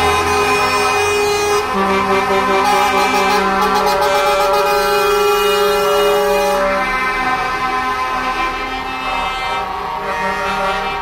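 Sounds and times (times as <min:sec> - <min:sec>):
truck air horns: 0:00.0 - 0:11.0.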